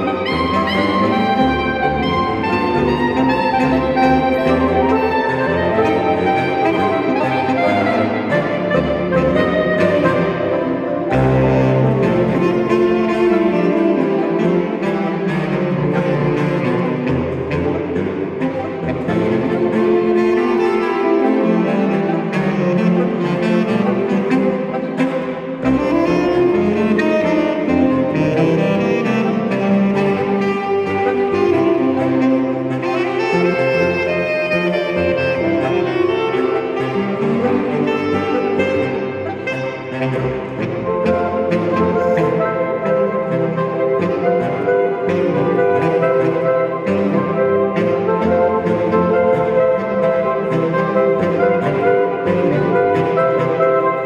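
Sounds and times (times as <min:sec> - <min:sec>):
saxophone quartet playing: 0:00.0 - 0:54.0.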